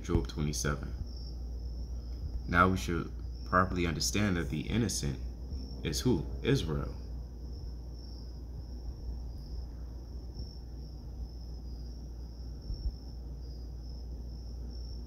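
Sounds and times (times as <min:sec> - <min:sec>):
insect trilling: 0:00.0 - 0:15.0
low steady hum: 0:00.0 - 0:15.0.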